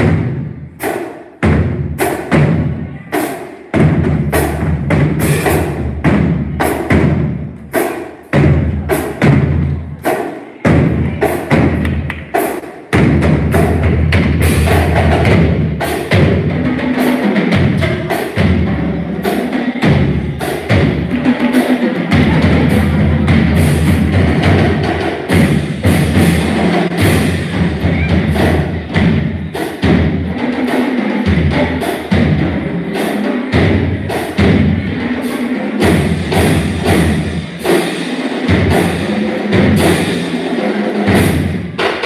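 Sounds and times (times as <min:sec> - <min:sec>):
large drums struck heavily: 0:03.7 - 0:09.6, 0:12.9 - 0:18.9, 0:19.8 - 0:42.0.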